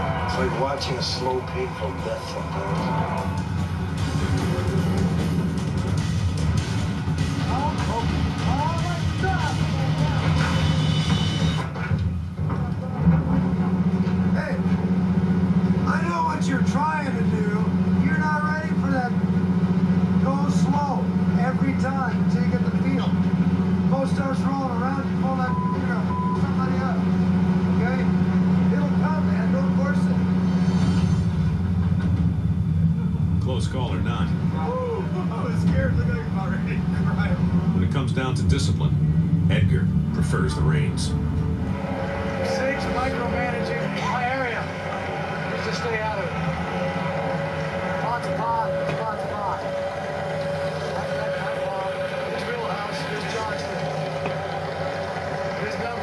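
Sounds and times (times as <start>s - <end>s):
indistinct voices: 0.0s - 5.7s, 33.4s - 56.0s
boat engine low drone: 0.0s - 56.0s.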